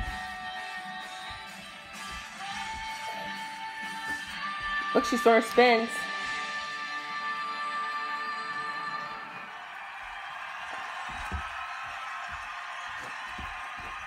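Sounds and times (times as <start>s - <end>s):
music on a television: 0.0s - 14.0s.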